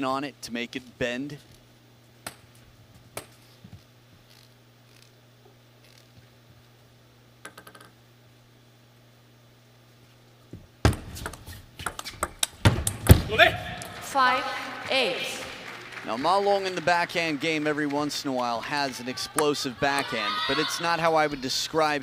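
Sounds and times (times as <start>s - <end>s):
low arena hum: 0.0s - 22.0s
table tennis rally clicks: 7.4s - 7.9s
table tennis ball bouncing: 7.4s - 8.0s, 10.8s - 14.1s
hall noise: 13.1s - 21.7s.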